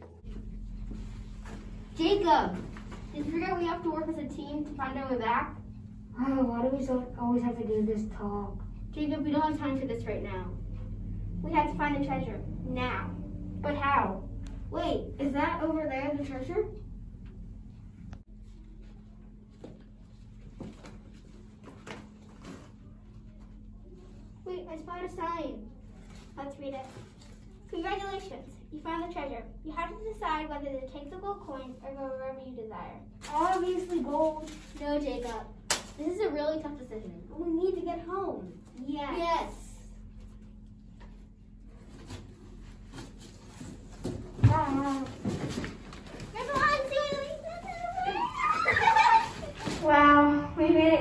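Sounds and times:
low room hum: 0:00.0 - 0:51.0.

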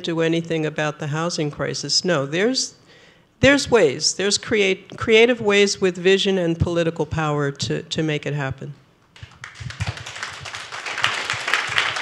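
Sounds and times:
audience applauding: 0:09.2 - 0:12.0.

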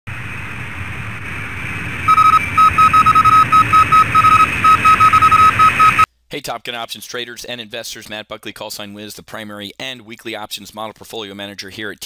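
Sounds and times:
steady hiss and hum: 0:00.1 - 0:06.9
electronic beeps: 0:02.1 - 0:06.1.

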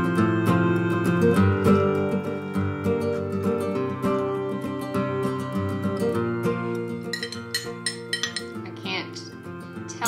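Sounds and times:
soft acoustic guitar music: 0:00.0 - 0:10.0
spoon clinking against mug: 0:07.1 - 0:08.7.

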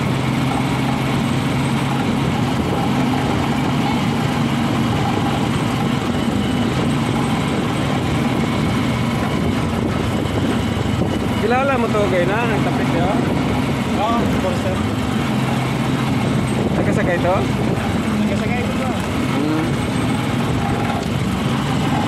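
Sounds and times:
road noise: 0:00.0 - 0:22.0
vehicle engine running: 0:00.0 - 0:22.0
wind noise: 0:00.0 - 0:22.0.

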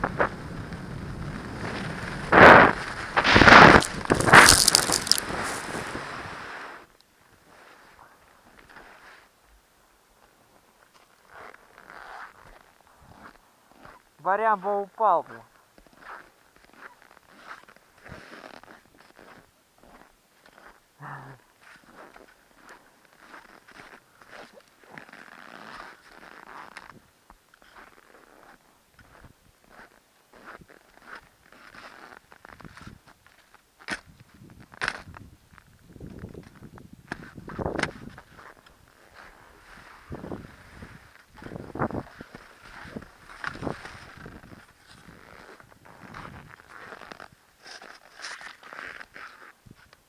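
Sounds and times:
skis scraping on snow: 0:00.0 - 0:09.3, 0:15.8 - 0:20.8, 0:21.6 - 0:26.9, 0:37.2 - 0:49.6.

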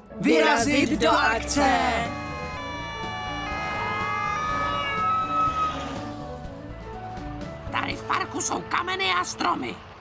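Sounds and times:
cartoon siren wailing: 0:01.9 - 0:06.1.

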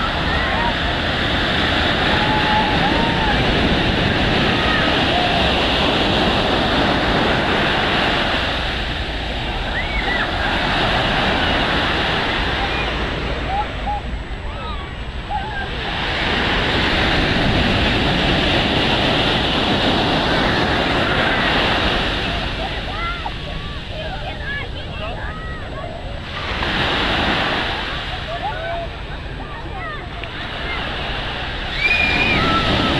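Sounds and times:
ocean surf breaking: 0:00.0 - 0:32.9.

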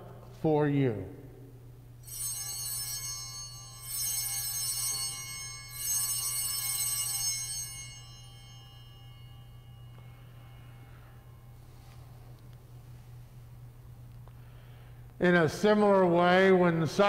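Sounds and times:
altar bells ringing: 0:02.0 - 0:13.9.

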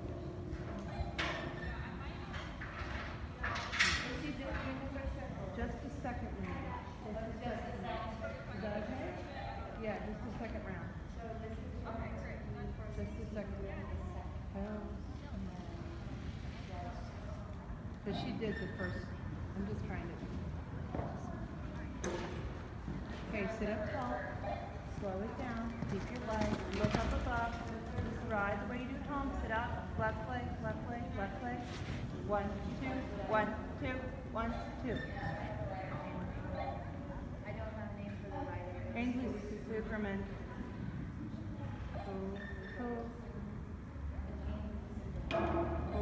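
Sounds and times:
horse hoofbeats on soft dirt: 0:24.9 - 0:28.7.

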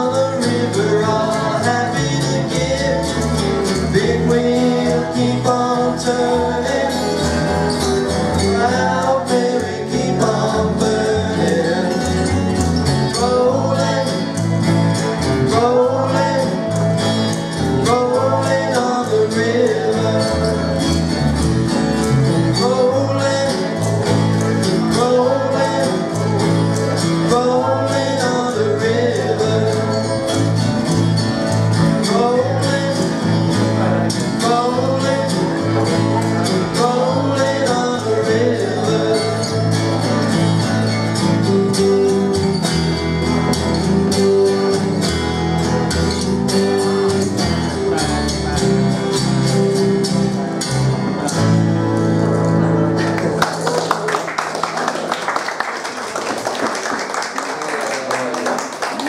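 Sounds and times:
upright double bass: 0:00.0 - 0:54.4
acoustic guitar: 0:00.0 - 0:59.0.

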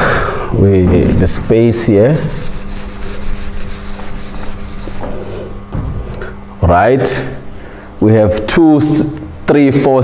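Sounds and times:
eraser rubbing on chalkboard: 0:01.1 - 0:05.5.

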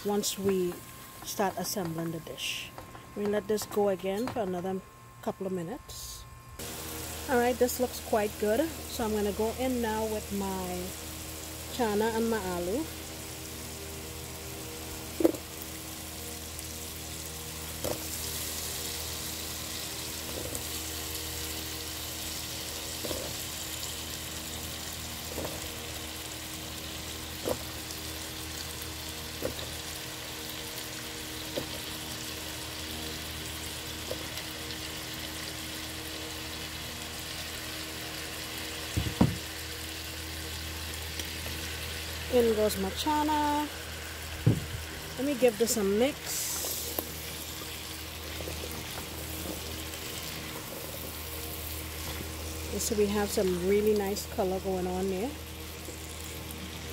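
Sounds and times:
steady low hum: 0:00.0 - 0:56.9
curry paste sizzling in a pot: 0:10.1 - 0:56.9.

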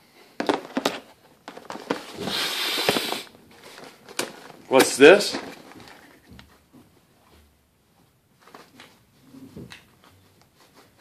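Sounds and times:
paper and cardboard rustling: 0:00.4 - 0:06.8.

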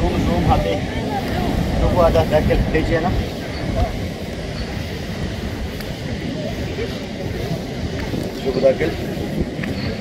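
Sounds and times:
ocean surf on rocky shore: 0:00.0 - 0:10.0
wind: 0:00.0 - 0:10.0.

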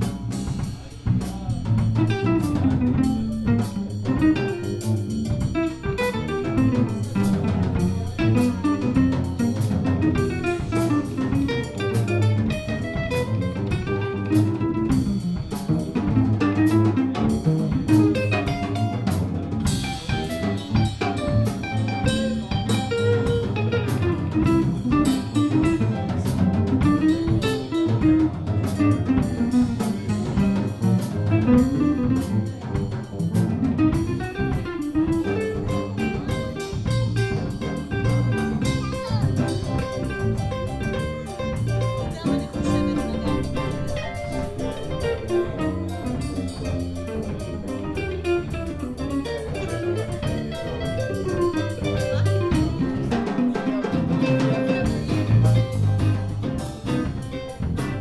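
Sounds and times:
drum kit with cymbals: 0:00.0 - 0:58.0
electric bass: 0:00.0 - 0:58.0
electric guitar: 0:00.0 - 0:58.0.

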